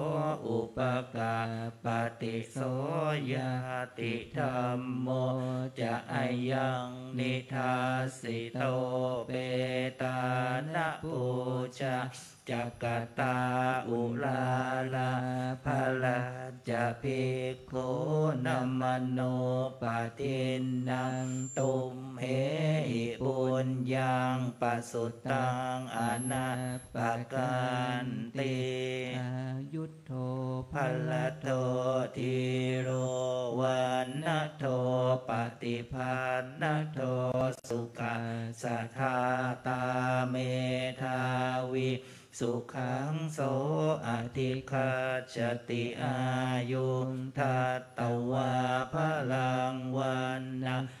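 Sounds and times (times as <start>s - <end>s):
monks chanting in unison: 0.0s - 51.0s.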